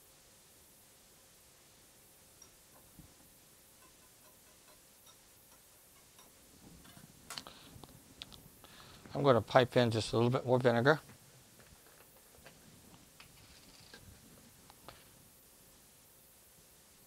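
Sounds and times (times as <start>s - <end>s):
whisk ticking against glass bowl: 2.3s - 3.0s, 3.7s - 6.4s.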